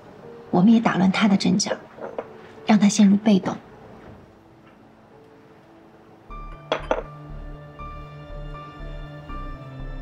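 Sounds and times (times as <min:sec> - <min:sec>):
quiet background music: 0:00.0 - 0:10.0
cup clinking on saucer: 0:02.0 - 0:02.4, 0:06.5 - 0:07.2.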